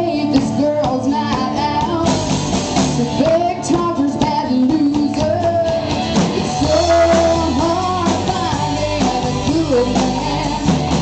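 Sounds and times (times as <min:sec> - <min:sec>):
woman singing: 0:00.0 - 0:10.9
acoustic and electric guitars: 0:00.0 - 0:11.0.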